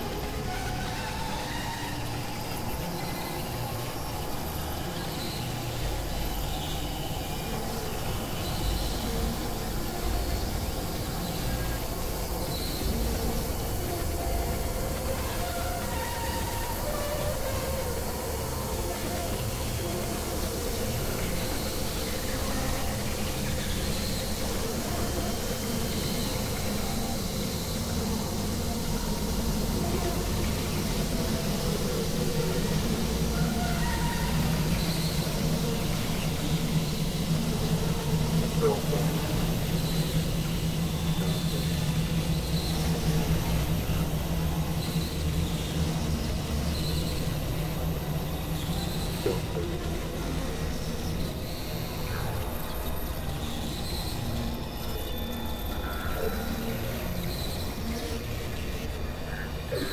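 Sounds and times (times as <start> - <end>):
faint voice-like sounds: 0.0 - 59.9
steady low hum: 0.0 - 59.9.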